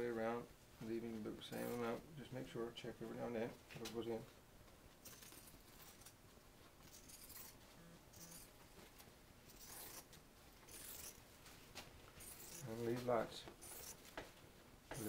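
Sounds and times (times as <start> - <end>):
scissors snipping fabric: 9.5 - 11.2, 12.3 - 12.7, 13.5 - 14.0.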